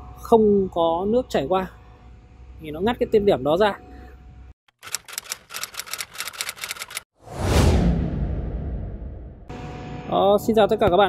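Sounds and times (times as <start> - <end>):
typewriter keystrokes: 4.7 - 7.0
falling whoosh with deep rumble: 7.2 - 9.5.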